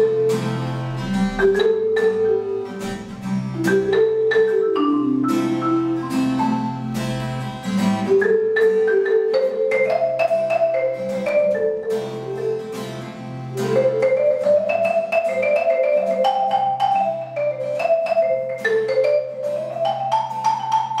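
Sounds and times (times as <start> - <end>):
acoustic guitar picked chords: 0.0 - 17.1
marimba notes: 0.0 - 21.0.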